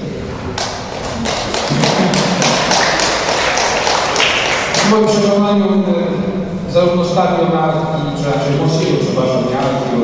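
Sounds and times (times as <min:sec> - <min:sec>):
audience applause: 0:00.6 - 0:05.0.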